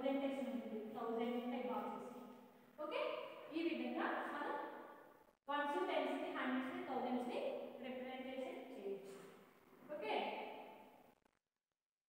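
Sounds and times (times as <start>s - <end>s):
woman speaking: 0.0s - 2.2s, 2.8s - 4.7s, 5.5s - 9.2s, 9.9s - 10.4s.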